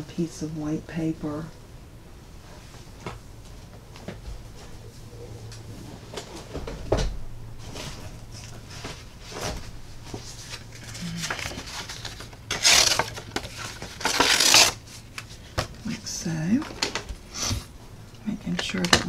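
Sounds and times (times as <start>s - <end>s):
paper sheet rustling: 7.6s - 15.6s.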